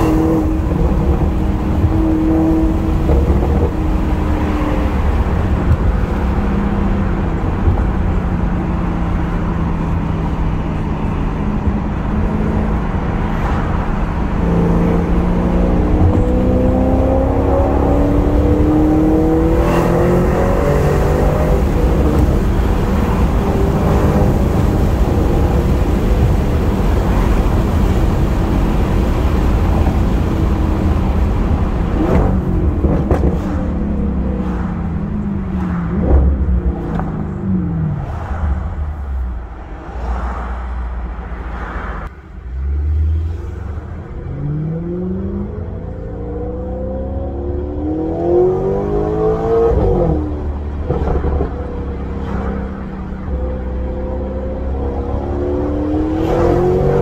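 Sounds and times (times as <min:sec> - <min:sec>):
car engine and road noise: 0:00.0 - 0:57.0.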